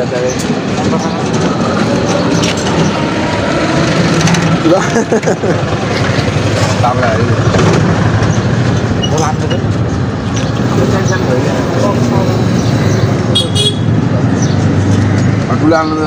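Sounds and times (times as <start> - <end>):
people talking: 0.0 - 2.6, 4.6 - 5.6, 6.6 - 7.4, 9.0 - 9.8, 10.7 - 12.5, 15.5 - 16.0
low engine hum of traffic: 0.0 - 16.0.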